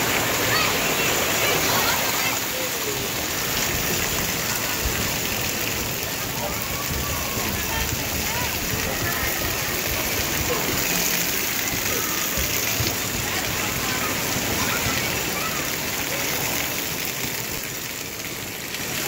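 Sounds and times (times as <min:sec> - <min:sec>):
voices of children and adults: 0:00.0 - 0:19.0
water falling and splashing: 0:00.0 - 0:19.0.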